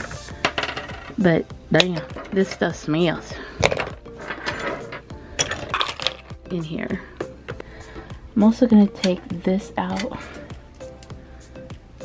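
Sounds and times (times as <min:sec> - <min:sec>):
small metal parts clinking: 0:00.4 - 0:01.2, 0:03.6 - 0:06.4.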